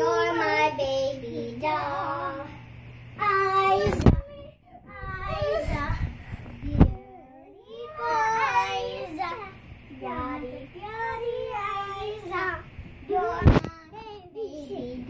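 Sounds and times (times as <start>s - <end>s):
child singing: 0.0s - 15.0s.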